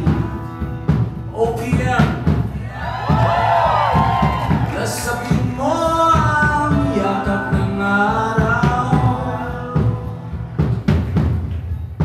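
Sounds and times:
live rock band playing: 0.0s - 12.0s
person singing: 4.7s - 10.4s.

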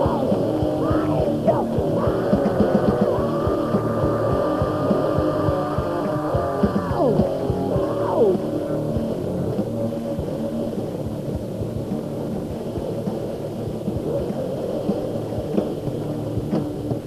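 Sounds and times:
amplifiers humming: 0.0s - 17.0s.

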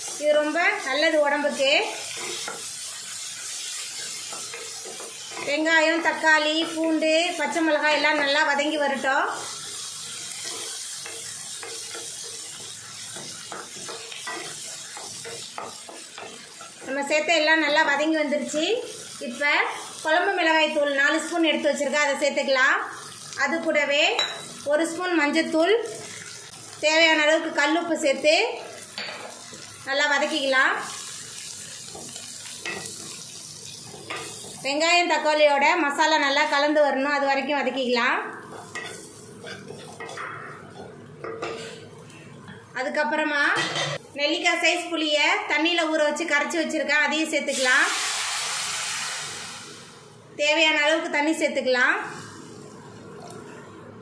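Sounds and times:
vegetables sizzling in oil: 0.0s - 53.8s
spatula scraping a pan: 1.9s - 6.8s, 9.3s - 17.0s, 38.5s - 41.8s.

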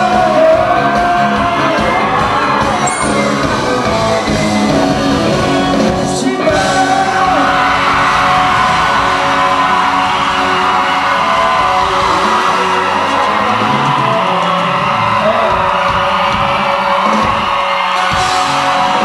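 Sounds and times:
audience yelling and whooping: 0.0s - 19.0s
live pop-rock band: 0.0s - 19.0s.

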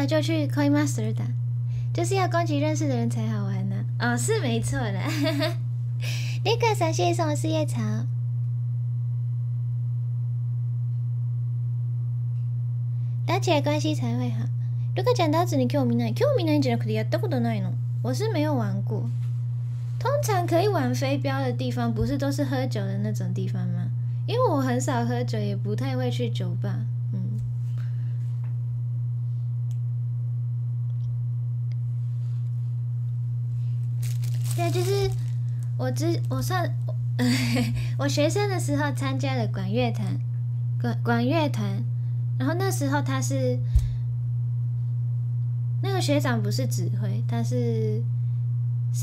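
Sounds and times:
low electrical hum: 0.0s - 49.0s.

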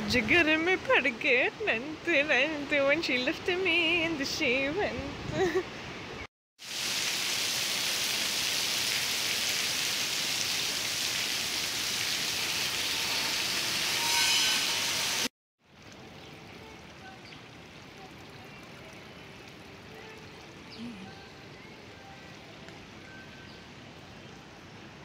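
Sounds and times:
heavy rain hissing: 6.6s - 14.0s.

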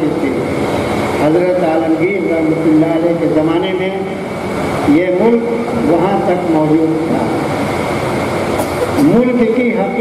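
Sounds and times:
man speaking over loudspeakers: 0.0s - 0.6s, 1.2s - 7.5s, 9.0s - 10.0s
loud broadband noise: 0.0s - 10.0s.

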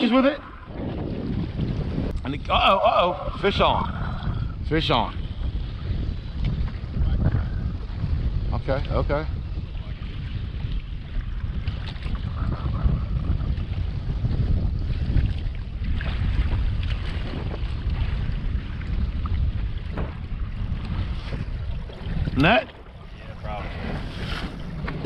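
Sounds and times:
waves washing against hull: 0.0s - 25.0s
wind rumbling on microphone: 0.0s - 25.0s.

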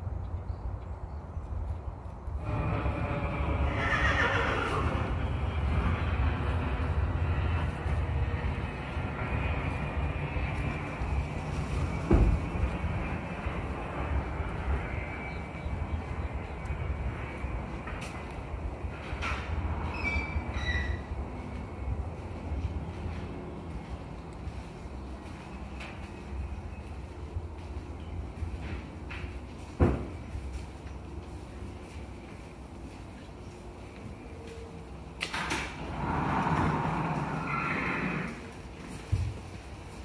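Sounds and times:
horse whinnying: 3.2s - 5.2s, 35.8s - 38.5s
low rumble: 4.7s - 25.3s.

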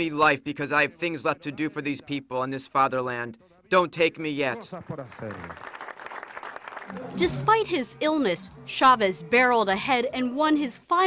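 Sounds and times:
man talking: 0.0s - 5.6s
audience applauding: 4.6s - 8.7s.

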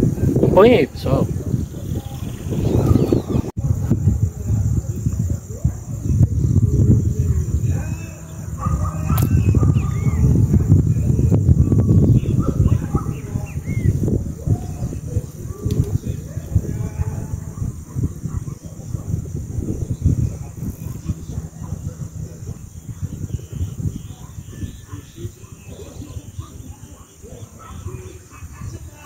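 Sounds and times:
distant voices shouting: 0.0s - 29.0s
wind buffeting microphone: 0.0s - 29.0s
sharp click: 9.2s - 9.4s.

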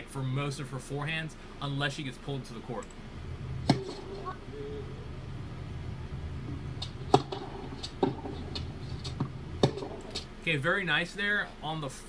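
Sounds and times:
steady low hum: 0.0s - 12.0s
racket striking tennis ball: 3.6s - 4.4s, 6.6s - 10.3s
tennis ball bouncing: 3.6s - 5.2s, 6.1s - 10.3s.

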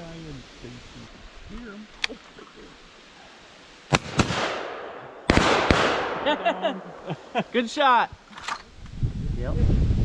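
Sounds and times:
shotgun shots: 3.9s - 6.4s.

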